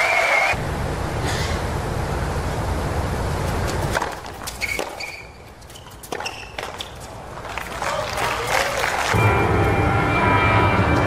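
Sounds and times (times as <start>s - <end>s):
tennis shoes squeaking on court: 3.5s - 7.3s
tennis ball hits and bounces: 3.7s - 7.1s.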